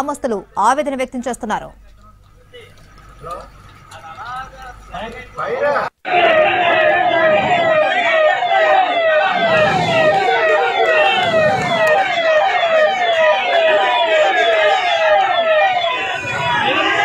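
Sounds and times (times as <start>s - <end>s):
siren yelping: 6.0s - 17.0s.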